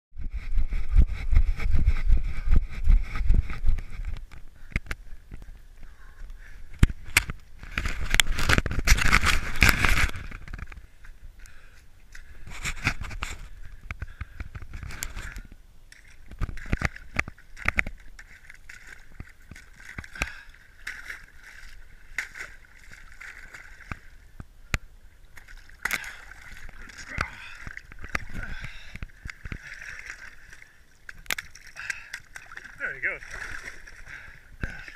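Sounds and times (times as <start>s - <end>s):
water sloshing and splashing: 12.1s - 24.5s, 25.1s - 34.9s.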